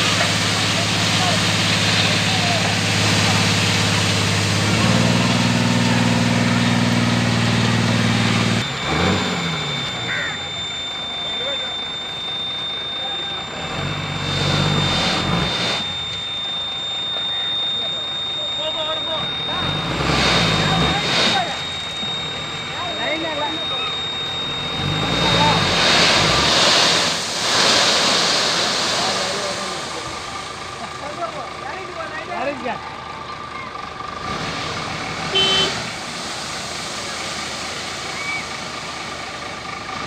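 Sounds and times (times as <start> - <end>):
gravel pouring: 0.0 - 12.0, 19.1 - 31.8, 34.4 - 40.0
diesel engine revving: 0.0 - 40.0.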